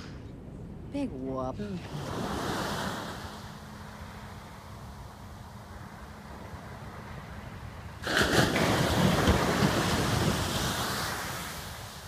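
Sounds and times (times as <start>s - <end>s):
ocean surf breaking on shore: 1.6s - 12.0s.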